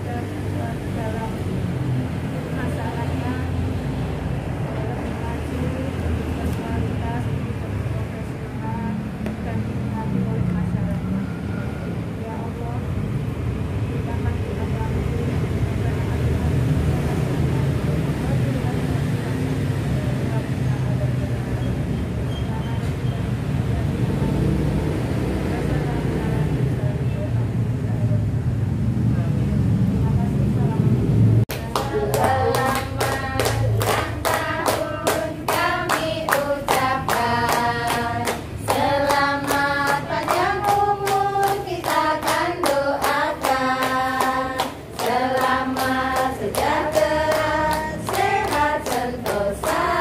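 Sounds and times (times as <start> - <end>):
low rumbling background noise: 0.0 - 50.0
person leading prayer: 31.5 - 50.0
group singing together: 31.6 - 50.0.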